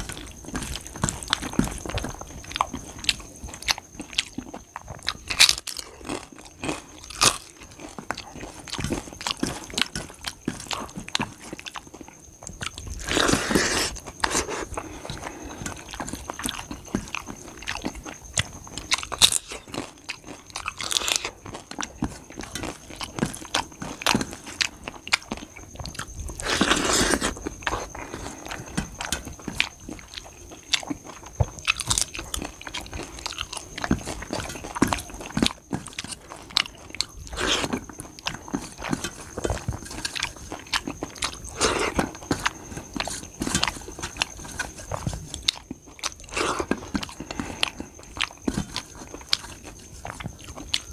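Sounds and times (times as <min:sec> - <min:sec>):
chewing and crunching: 0:00.0 - 0:50.9.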